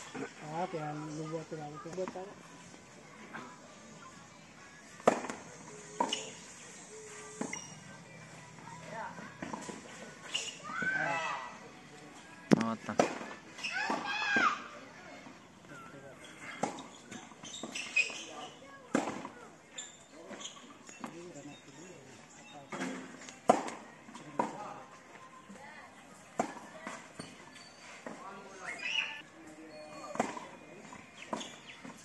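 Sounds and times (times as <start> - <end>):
tennis balls hit by rackets: 4.9 - 6.4, 9.4 - 10.9, 12.5 - 14.5, 16.4 - 18.2, 18.9 - 19.4, 22.7 - 24.8, 30.1 - 32.0.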